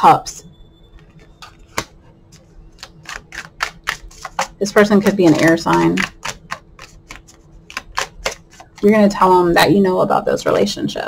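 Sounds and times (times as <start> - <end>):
cards being shuffled by hand: 1.1 - 9.1.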